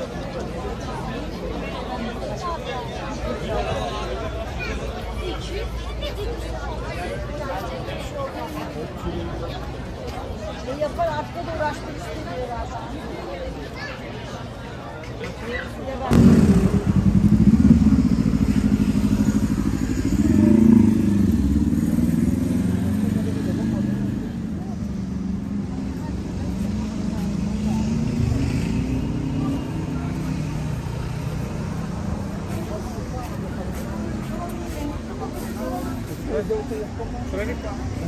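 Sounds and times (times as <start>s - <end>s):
street traffic rumble: 0.0s - 38.0s
vehicle engine running: 16.1s - 36.5s.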